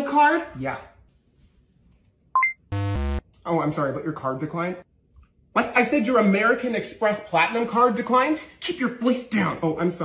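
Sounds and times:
short rising beep: 2.4 - 3.2
harsh error buzz: 2.7 - 3.2.

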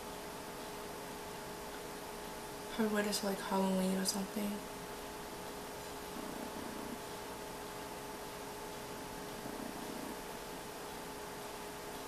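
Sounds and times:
hum with hiss: 0.0 - 12.0.

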